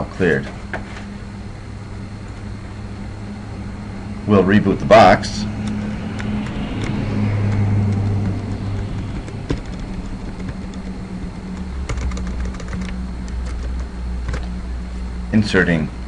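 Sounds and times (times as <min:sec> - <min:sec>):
low hum: 0:00.0 - 0:16.0
keyboard typing clicks: 0:11.5 - 0:14.5.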